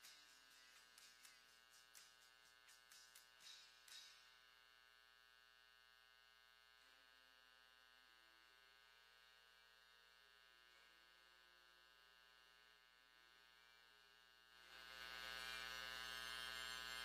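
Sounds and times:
faint electrical hum and buzz: 0:00.0 - 0:17.0.

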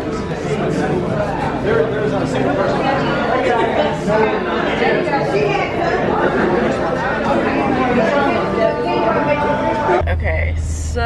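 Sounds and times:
overlapping voices chattering: 0:00.0 - 0:10.0.

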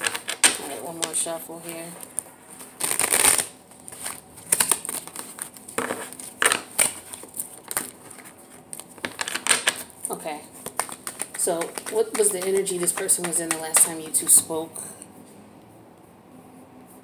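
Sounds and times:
cards being shuffled: 0:00.0 - 0:14.5.

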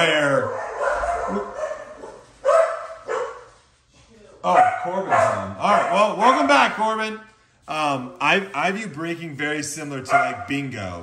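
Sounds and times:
dog barking: 0:00.4 - 0:03.6, 0:04.5 - 0:06.6, 0:10.1 - 0:10.6.

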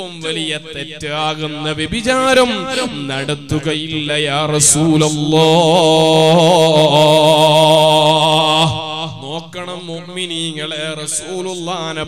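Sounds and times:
man chanting melodic recitation: 0:00.0 - 0:12.0.

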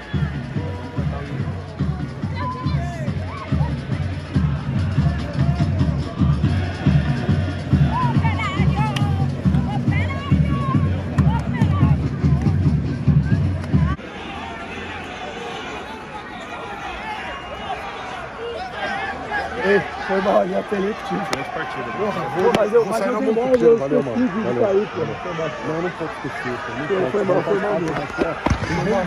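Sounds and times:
music with heavy low beat: 0:00.0 - 0:14.0
crowd murmur: 0:00.0 - 0:29.0.

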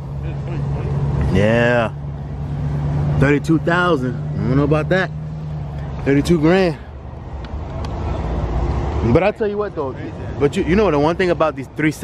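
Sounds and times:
motor vehicle rumbling: 0:00.0 - 0:12.0.

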